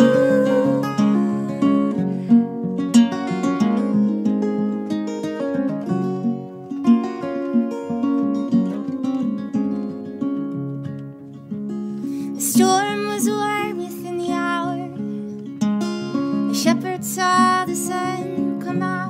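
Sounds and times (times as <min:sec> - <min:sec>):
acoustic guitars fingerpicking: 0:00.0 - 0:19.0.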